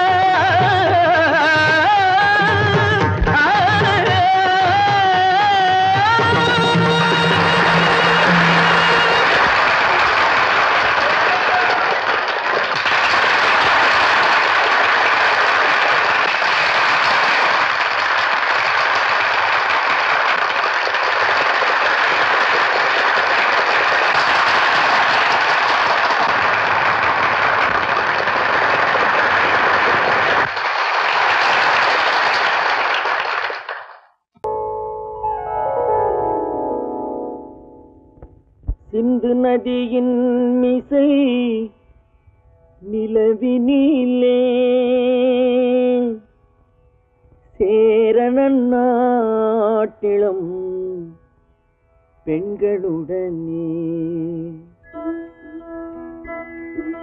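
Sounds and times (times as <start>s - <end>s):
audience clapping: 0.0s - 34.2s
held musical note: 34.4s - 38.2s.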